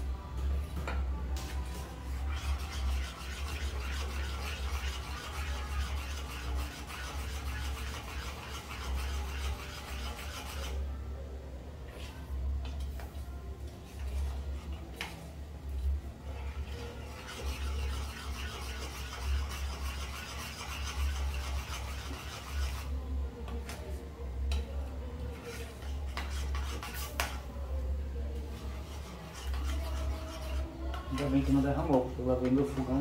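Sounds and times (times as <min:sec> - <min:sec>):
spoon scraping a saucepan: 0:02.1 - 0:10.9, 0:16.4 - 0:23.0, 0:25.3 - 0:27.5, 0:28.5 - 0:31.9.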